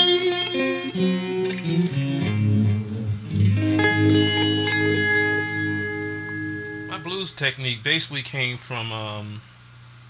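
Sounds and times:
electric guitar blues phrase: 0.0 - 7.8.

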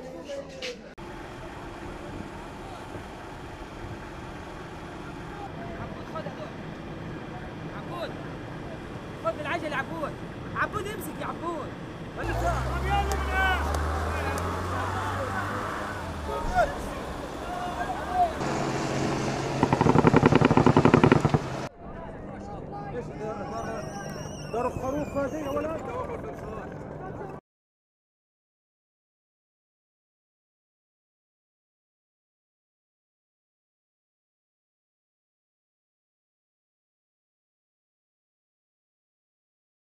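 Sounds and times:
helicopter rotor beating: 1.0 - 21.7, 24.5 - 27.4
armoured vehicles driving on road: 1.0 - 27.4
faint voices: 4.7 - 18.8
men shouting: 12.2 - 18.7.

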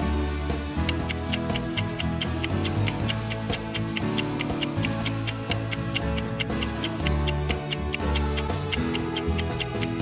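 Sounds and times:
background music: 0.0 - 10.0
countdown timer ticking: 0.8 - 10.0.

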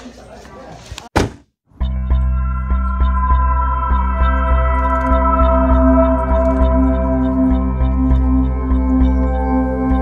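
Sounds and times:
music with strong bass and beat: 1.7 - 10.0.

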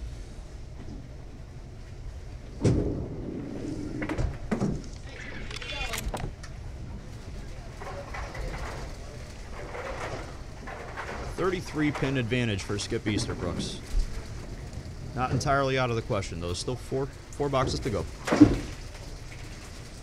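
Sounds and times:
background voices: 6.8 - 19.0
bowling ball knocking pins: 17.6 - 19.5.

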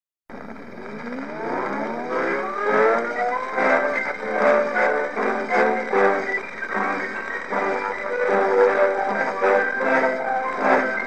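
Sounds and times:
record hiss: 0.3 - 11.0.

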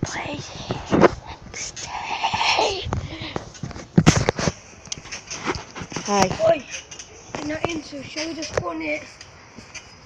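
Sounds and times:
camera handling knocks and rubs: 2.9 - 6.4.

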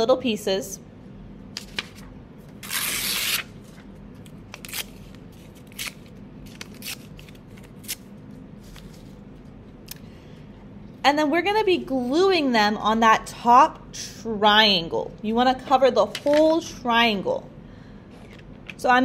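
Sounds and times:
paper crackling: 1.6 - 8.0
paper tearing: 2.6 - 3.6, 4.5 - 8.1.

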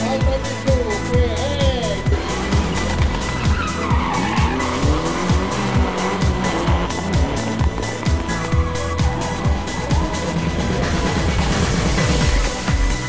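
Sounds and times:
music with steady beat: 0.0 - 13.0
car tyres screeching: 1.9 - 12.4.

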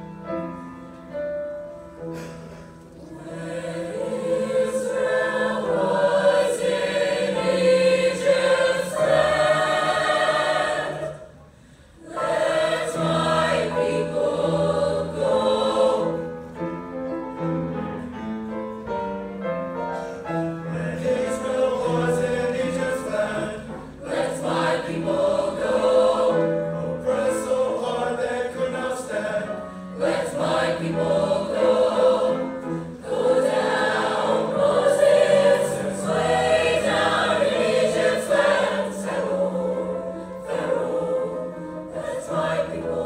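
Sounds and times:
choir singing in harmony: 0.0 - 18.2, 19.9 - 43.0.

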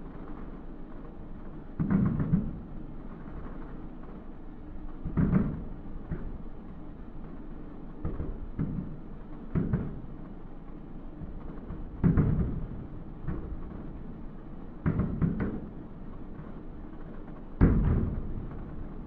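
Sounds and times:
distant fireworks booming: 0.0 - 19.0.

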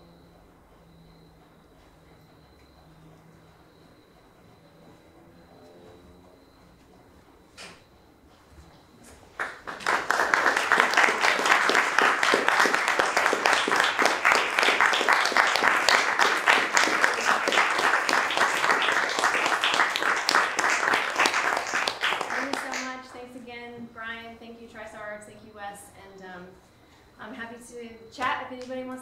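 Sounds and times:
audience applauding: 9.3 - 23.2.

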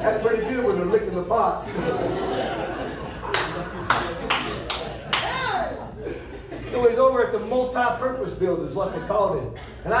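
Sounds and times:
slow hand claps: 3.3 - 5.3.

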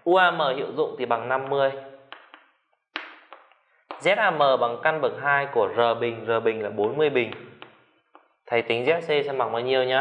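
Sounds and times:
light chalk taps: 6.8 - 8.4.

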